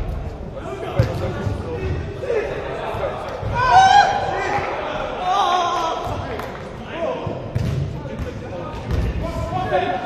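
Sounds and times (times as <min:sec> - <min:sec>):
men shouting in a hall: 0:02.1 - 0:06.3.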